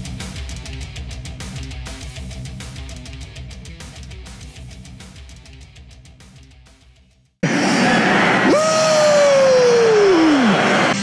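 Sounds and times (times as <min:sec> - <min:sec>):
person yelling: 0:07.4 - 0:10.7.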